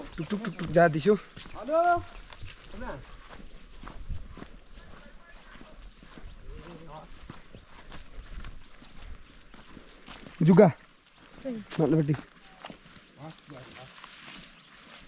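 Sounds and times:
footsteps on a muddy trail: 0.0 - 15.0
faint voices: 4.4 - 8.0.

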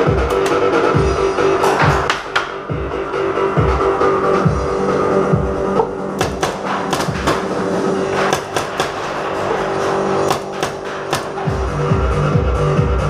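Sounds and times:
music: 0.0 - 13.0
paintball markers firing: 6.2 - 7.5, 8.1 - 9.2, 10.3 - 11.5.

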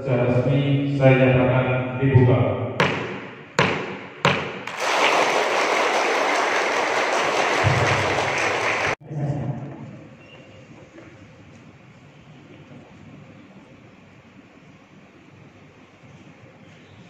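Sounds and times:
wooden gavel knocks: 2.8 - 4.6
applause: 4.7 - 9.0.

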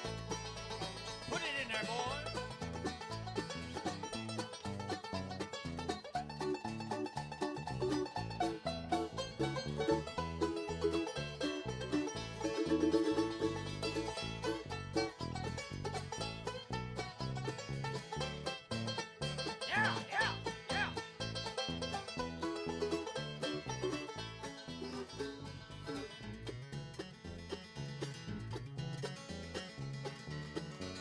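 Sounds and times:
banjo picking: 0.0 - 31.0
fiddle: 0.0 - 31.0
guitar: 0.0 - 31.0
upright bass: 0.0 - 31.0.

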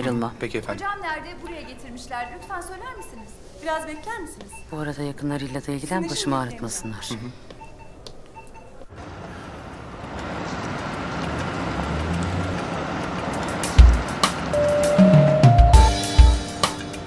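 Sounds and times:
soft electronic beeps: 1.1 - 8.9
car driving and pulling up: 8.9 - 15.8
music: 13.6 - 17.0.

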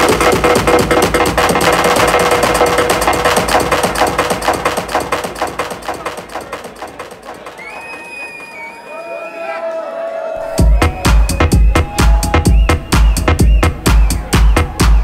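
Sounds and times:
loud electronic dance music: 0.0 - 8.5, 10.4 - 15.0.

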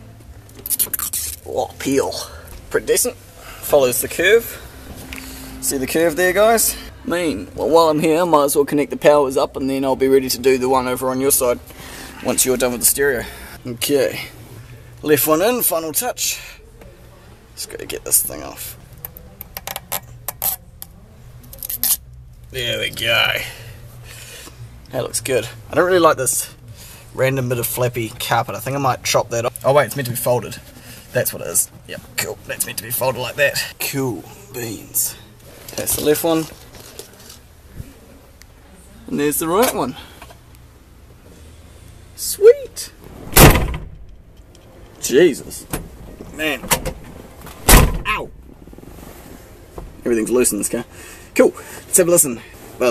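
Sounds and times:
loud thump inside car: 43.3 - 44.0, 47.6 - 48.1.

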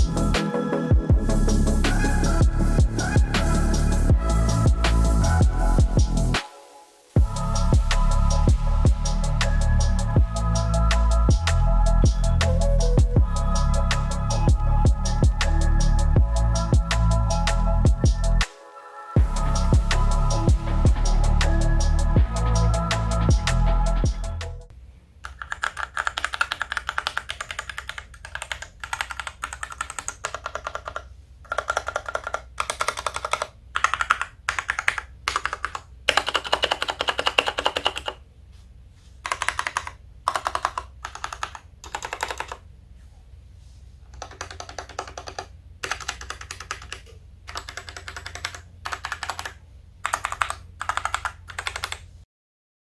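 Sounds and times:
mechanical keyboard typing: 25.2 - 38.2, 39.2 - 42.6, 44.1 - 52.1.

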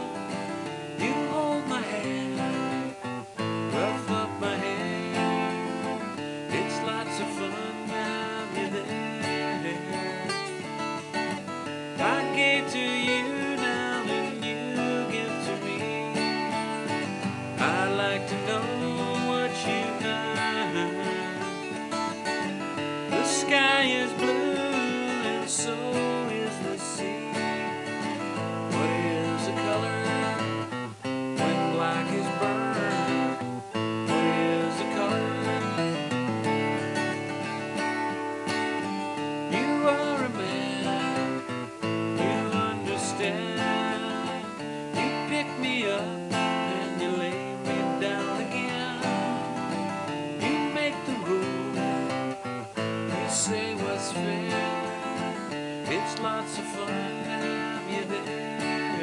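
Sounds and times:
strummed acoustic guitar: 0.0 - 59.0.

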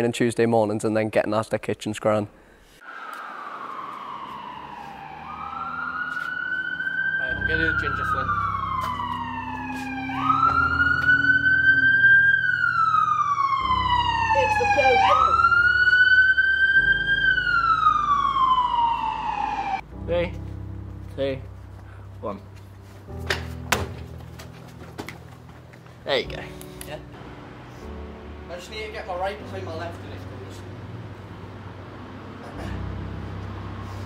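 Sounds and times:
emergency siren wailing: 2.8 - 19.8.

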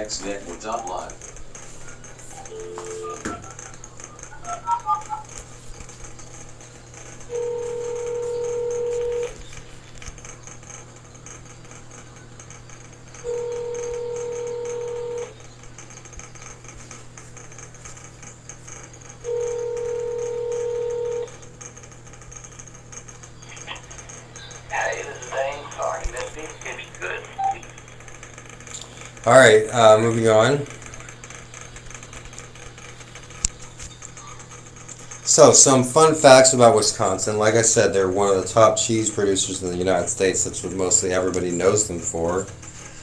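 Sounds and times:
keypad beeps: 2.3 - 5.3, 27.4 - 27.6
phone ringback tone: 2.3 - 5.3, 7.3 - 9.4, 13.2 - 15.3, 19.3 - 21.3.

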